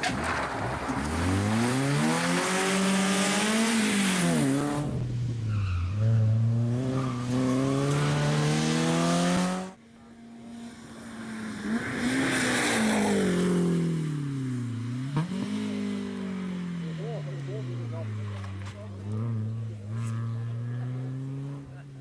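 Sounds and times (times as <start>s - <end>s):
rally car engine revving: 0.0s - 22.0s.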